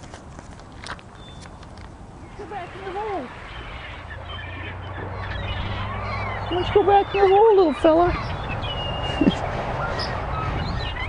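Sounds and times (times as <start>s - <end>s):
light taps and rustles: 0.0s - 2.0s
outdoor background noise: 0.0s - 11.0s.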